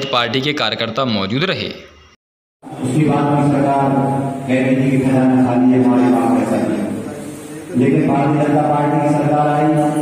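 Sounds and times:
man chanting: 2.7s - 10.0s.

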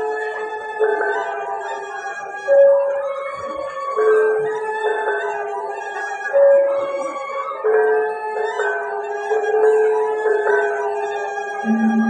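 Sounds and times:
gamelan metallophones and gongs: 11.6s - 12.0s.

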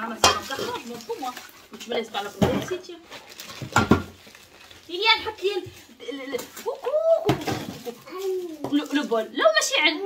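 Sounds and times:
people talking: 0.0s - 3.0s, 4.9s - 10.0s.

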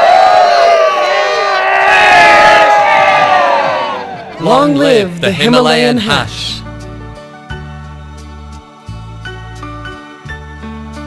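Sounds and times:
crowd shouting and cheering: 0.0s - 5.1s.

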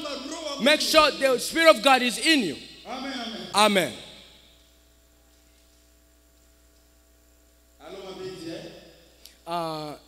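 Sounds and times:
man speaking: 0.0s - 4.2s, 7.8s - 10.0s
faint mains hum: 0.0s - 10.0s.

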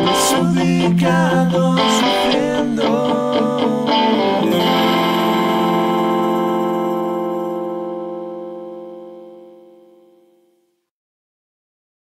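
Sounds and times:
band holding final chord: 2.8s - 10.3s.

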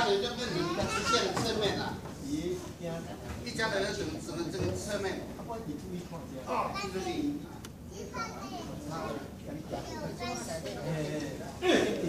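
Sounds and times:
children chattering: 0.0s - 1.8s, 6.4s - 12.0s.

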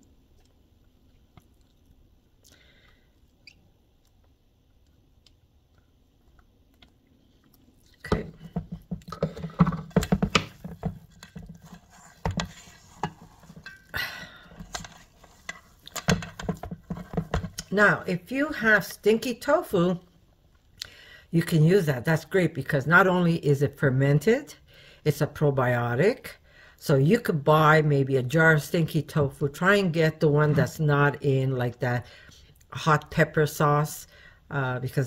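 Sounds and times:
spatula mashing thick mixture: 7.9s - 13.9s, 14.6s - 17.7s.

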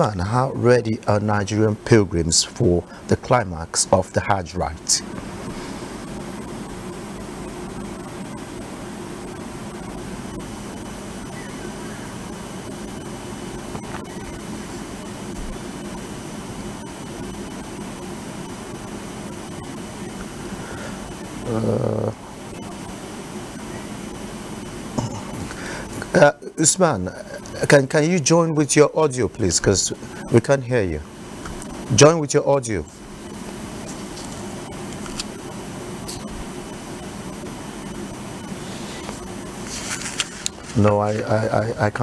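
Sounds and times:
steady hiss with low hum: 0.0s - 42.0s.

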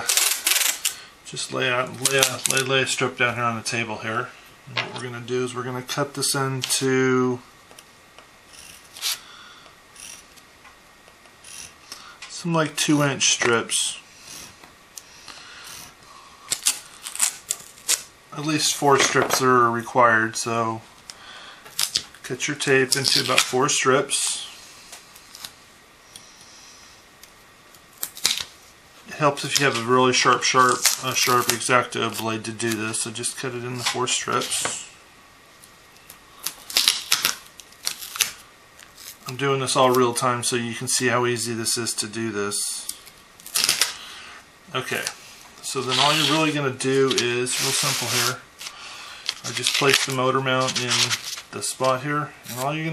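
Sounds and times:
knife blade scraping tape: 0.0s - 1.0s, 8.5s - 9.2s, 16.5s - 18.1s, 45.8s - 48.7s
knife cutting strapping tape: 8.6s - 9.2s, 36.4s - 38.4s, 43.4s - 44.0s, 45.8s - 48.7s.

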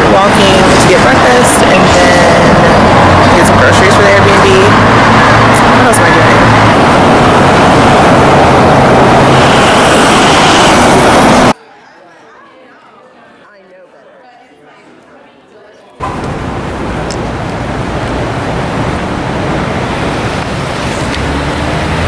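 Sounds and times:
cars passing: 0.0s - 11.6s, 16.0s - 22.0s
low engine hum: 16.0s - 22.0s.

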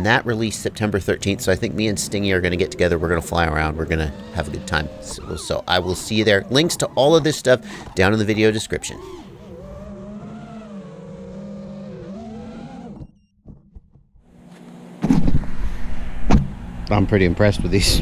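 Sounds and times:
rushing wind: 0.0s - 10.7s
drone motors whining: 0.0s - 13.6s.

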